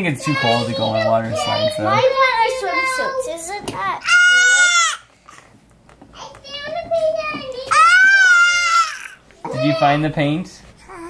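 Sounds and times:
child squealing: 4.0s - 5.1s, 7.7s - 9.8s.

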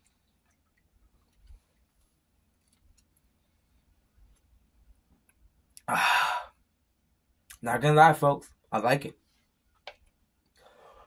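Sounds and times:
man's breathy ah: 5.9s - 6.6s.

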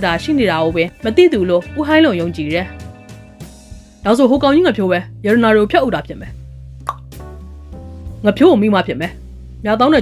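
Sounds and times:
quiet background music: 0.0s - 10.0s
short plop: 6.8s - 7.2s.

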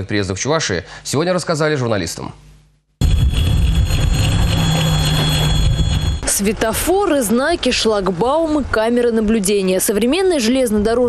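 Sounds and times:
high whine: 3.0s - 6.7s
train rumbling on track: 3.0s - 6.9s.

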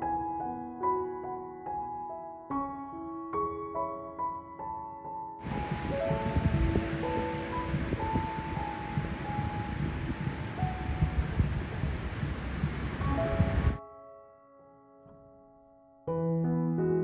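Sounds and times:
piano music: 0.0s - 17.0s
surf washing: 5.4s - 13.8s
wind buffeting microphone: 5.4s - 13.8s.

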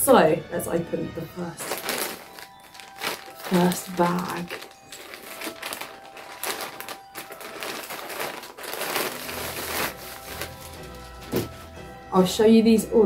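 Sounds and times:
plastic bag crinkling: 1.5s - 11.6s.

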